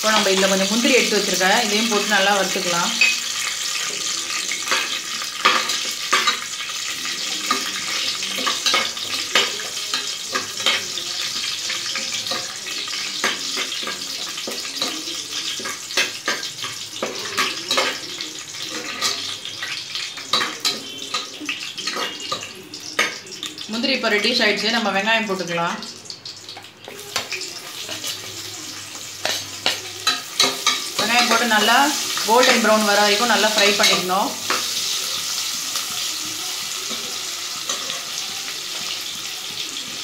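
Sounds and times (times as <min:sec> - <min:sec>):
nuts frying in hot oil: 0:00.0 - 0:40.0.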